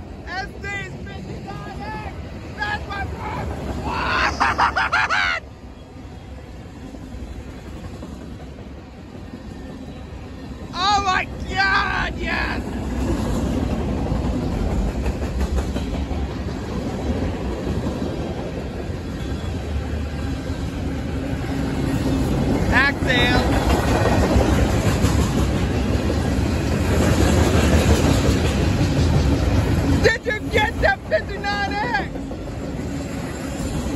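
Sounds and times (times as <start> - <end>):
freight train rolling by: 0.0 - 33.9
steel wheels clattering on rail: 6.8 - 11.5, 12.6 - 33.9.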